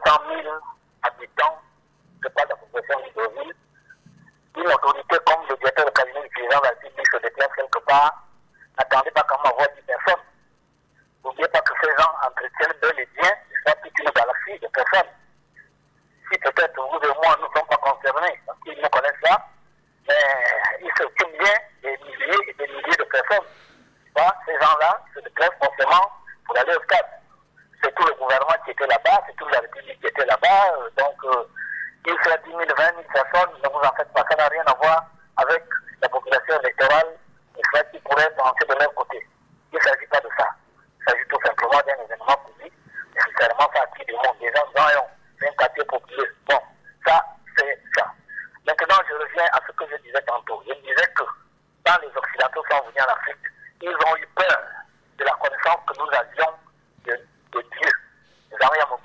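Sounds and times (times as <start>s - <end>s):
person speaking over telephone: 0.0s - 10.4s, 11.0s - 59.0s.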